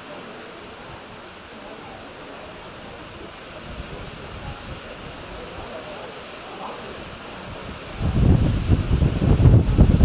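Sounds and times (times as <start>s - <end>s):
open-air ambience: 0.0s - 10.0s
wind on microphone: 2.5s - 6.1s, 6.7s - 10.0s.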